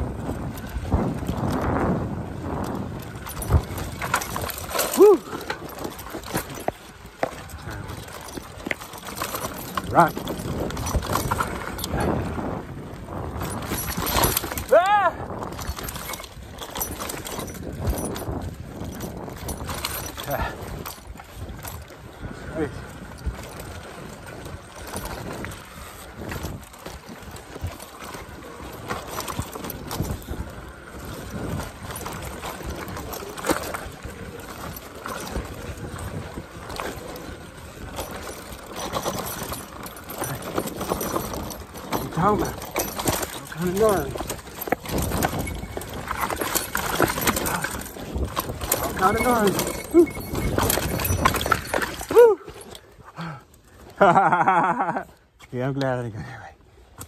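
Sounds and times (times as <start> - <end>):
bike rattling over dirt trail: 0.0 - 57.0
tyre and wind noise: 0.0 - 57.0.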